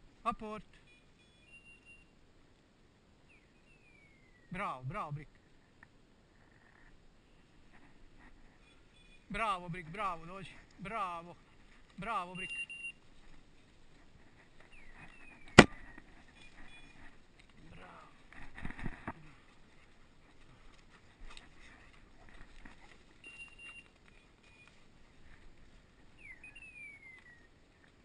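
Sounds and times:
shotgun shot: 15.6 - 15.8.

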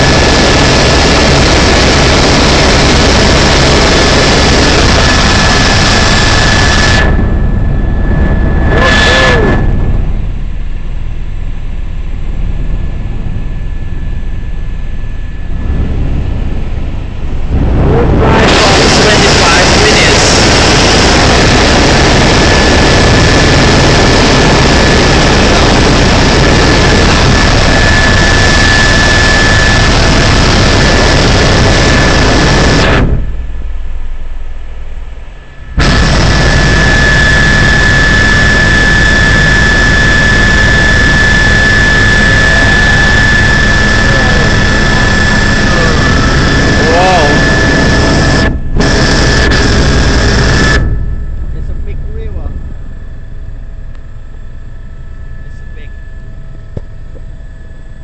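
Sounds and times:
helicopter engine and rotor drone: 0.0 - 58.0
high whine: 0.0 - 58.0.

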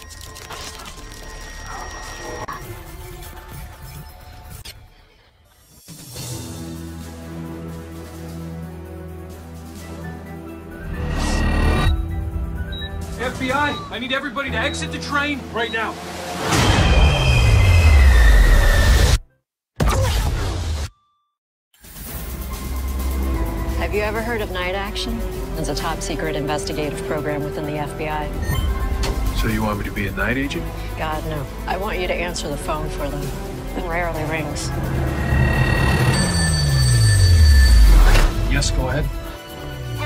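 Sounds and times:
wheels squealing on rails: 35.2 - 38.2.

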